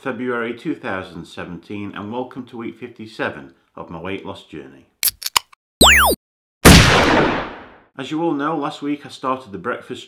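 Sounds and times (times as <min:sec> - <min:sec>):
electronic zap: 0:05.8 - 0:07.6.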